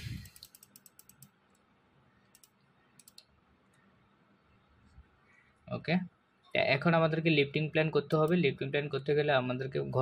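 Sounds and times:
faint computer mouse clicks: 0.2s - 3.8s.

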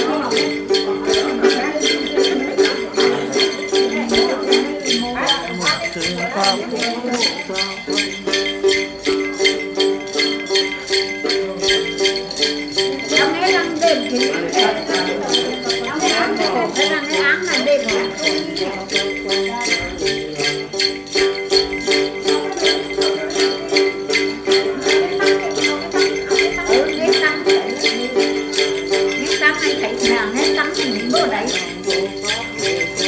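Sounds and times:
jingle bells shaken: 0.0s - 33.0s
plucked lute: 0.0s - 33.0s.

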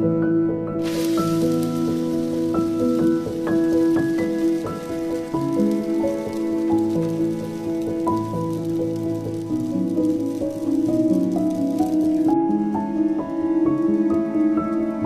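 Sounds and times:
soft instrumental music: 0.0s - 15.0s
crepe sizzling in frying pan: 0.8s - 15.0s.

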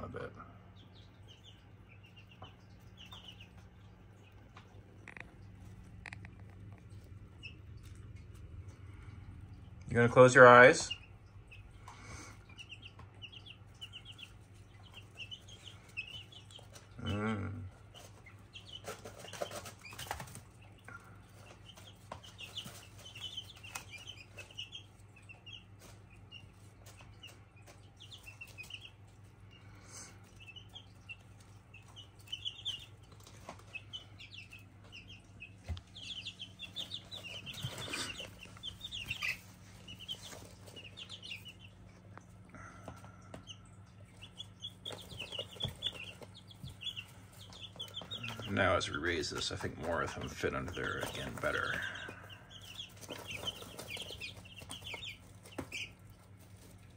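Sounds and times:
chicks peeping: 0.0s - 56.9s
steady low hum: 0.0s - 56.9s.

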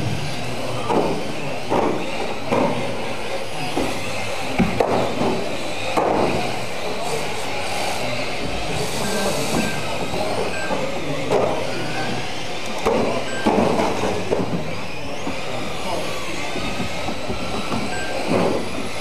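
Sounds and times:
rc cars motor whine: 0.0s - 19.0s.

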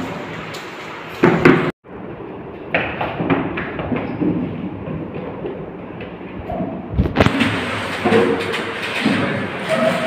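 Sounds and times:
desks scraping on hard floor: 7.0s - 10.0s.

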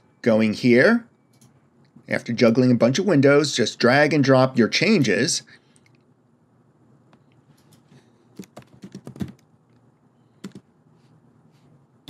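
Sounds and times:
typing on computer keyboard: 7.6s - 9.4s, 10.4s - 10.6s.

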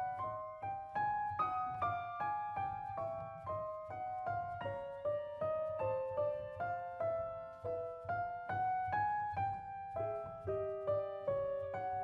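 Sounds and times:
grand piano chords: 0.0s - 12.0s.

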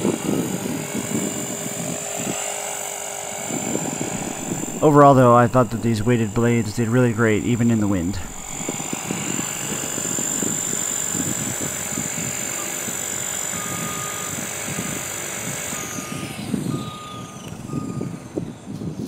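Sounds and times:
model helicopter rotor whining: 0.0s - 19.0s
short electronic beeps: 13.4s - 15.0s.

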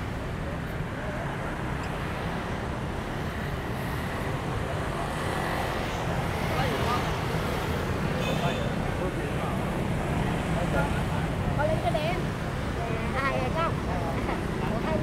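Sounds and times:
city traffic hum: 0.0s - 15.0s.

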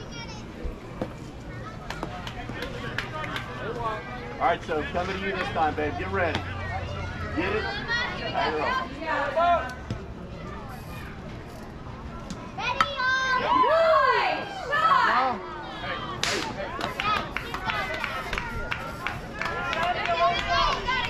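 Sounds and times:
children and spectators yelling: 5.1s - 11.3s, 12.6s - 21.0s.

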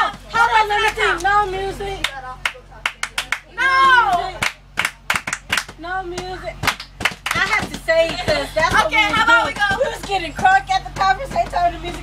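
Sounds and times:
voices calling out: 0.0s - 12.0s
group clapping: 0.1s - 10.2s.

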